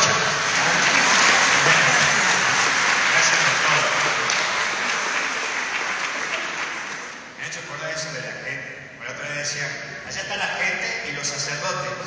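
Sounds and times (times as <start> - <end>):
crowd applauding: 0.0 - 7.4.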